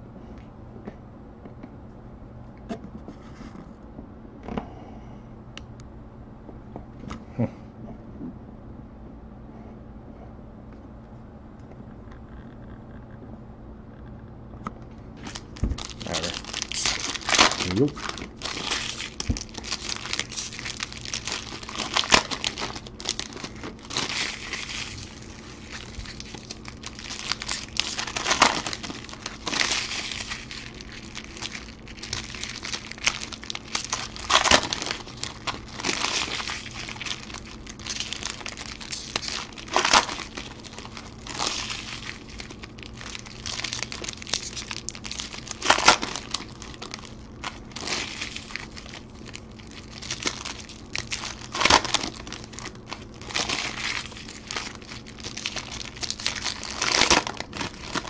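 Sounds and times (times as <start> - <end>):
foil wrappers crinkling: 15.2 - 58.0.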